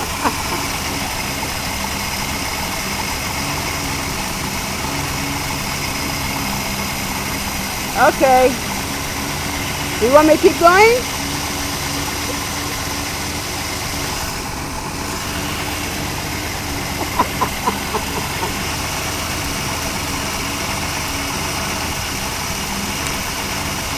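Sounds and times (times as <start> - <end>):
car engine idling: 0.0 - 23.9.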